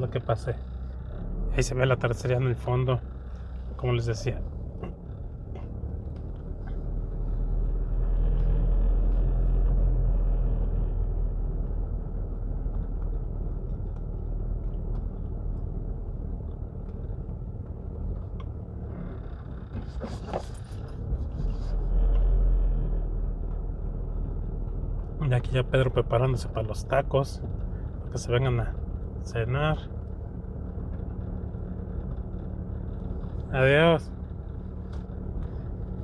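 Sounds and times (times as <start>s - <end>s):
car engine and road noise: 0.0s - 36.0s.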